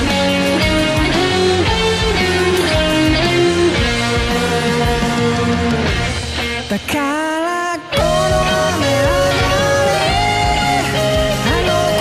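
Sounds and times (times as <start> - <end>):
electric guitar lead: 0.0 - 12.0
full band playing: 0.0 - 12.0.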